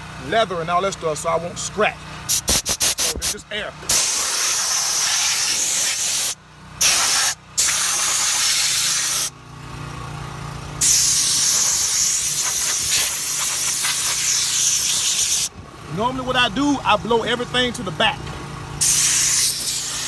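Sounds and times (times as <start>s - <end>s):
air blow gun hissing: 2.3s - 9.3s, 10.8s - 15.5s, 18.8s - 20.0s.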